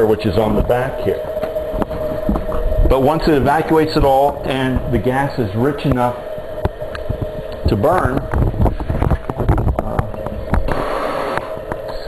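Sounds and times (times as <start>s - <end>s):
sharp clicks and knocks: 6.6s - 12.0s
hiss: 10.7s - 11.5s
electric blower whining: 10.7s - 11.6s.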